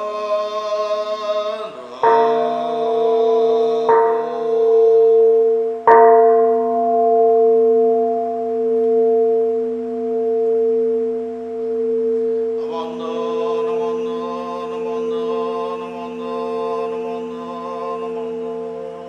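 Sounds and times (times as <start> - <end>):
bowl bell ringing: 2.0 - 19.0.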